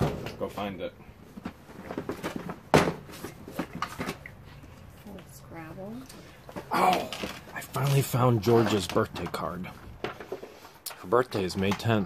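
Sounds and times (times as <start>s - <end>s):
boxes knocking and rustling: 0.0s - 4.8s, 6.5s - 12.0s.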